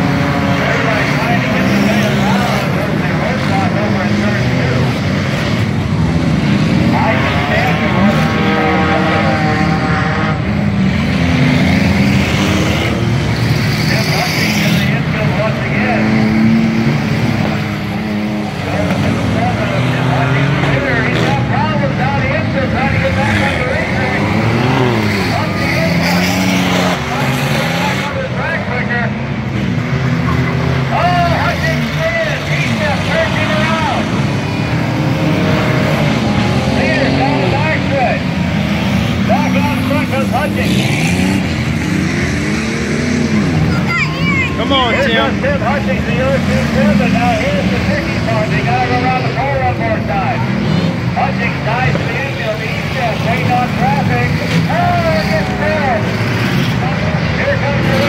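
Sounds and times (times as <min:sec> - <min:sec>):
race car engines revving: 0:00.0 - 0:58.0
voices: 0:00.0 - 0:58.0.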